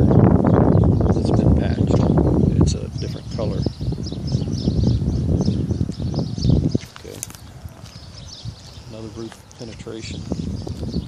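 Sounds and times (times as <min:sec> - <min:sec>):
small birds chirping: 0:00.0 - 0:11.0
wind rumble on microphone: 0:00.0 - 0:11.0.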